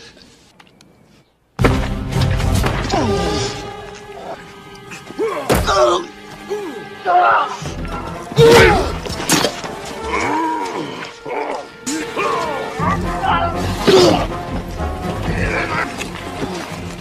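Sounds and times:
action film music score: 1.6s - 17.0s
voices yelling: 4.1s - 9.0s, 9.9s - 14.3s.

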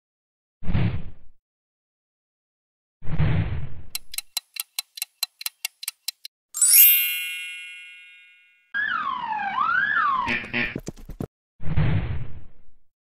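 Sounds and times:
bright chime ringing: 6.6s - 8.8s
ambulance siren wailing: 8.8s - 10.5s.

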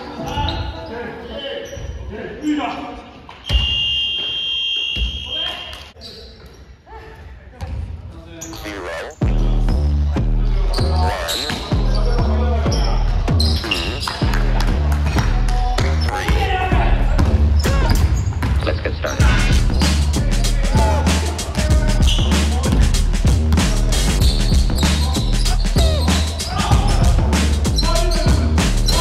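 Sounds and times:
players' voices: 5.2s - 29.0s
music with heavy bass line: 19.2s - 29.0s.

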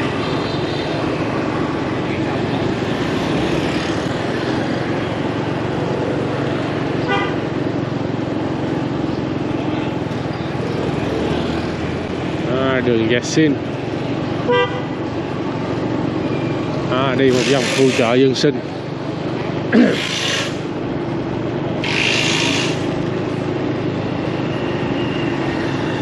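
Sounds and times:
motorbike engine and road noise: 0.0s - 26.0s.

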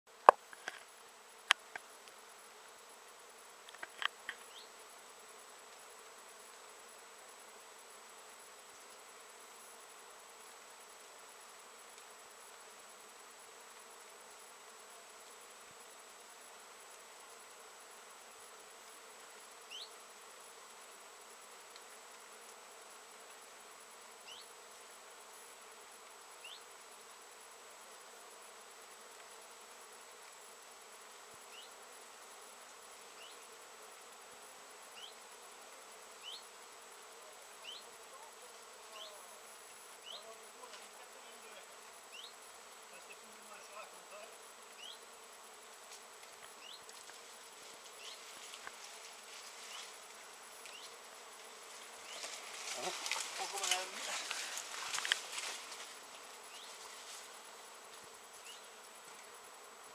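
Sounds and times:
bees humming: 0.1s - 59.9s.

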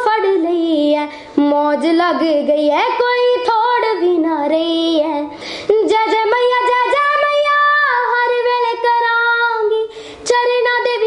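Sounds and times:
girl singing: 0.0s - 11.0s
girl breathing in: 1.0s - 1.4s, 5.3s - 5.7s, 9.9s - 10.3s.

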